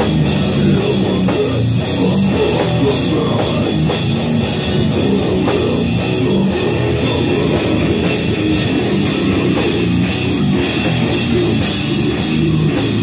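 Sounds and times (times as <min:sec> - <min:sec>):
distorted electric guitars: 0:00.0 - 0:13.0
drum kit with crashing cymbals: 0:00.0 - 0:13.0.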